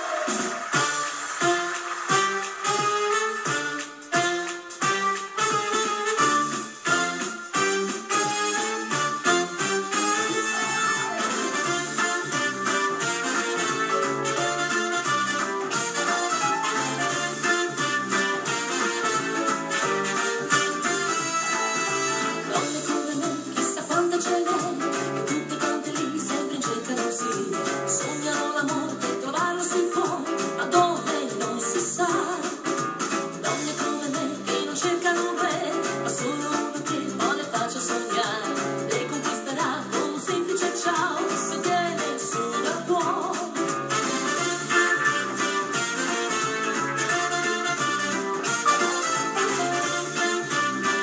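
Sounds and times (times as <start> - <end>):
dance band playing: 0.0 - 51.0
woman singing: 22.4 - 32.8, 33.4 - 43.7.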